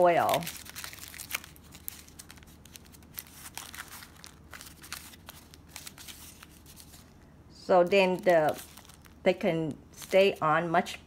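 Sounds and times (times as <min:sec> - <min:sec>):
aluminium foil crinkling: 0:00.0 - 0:07.2, 0:07.8 - 0:10.5.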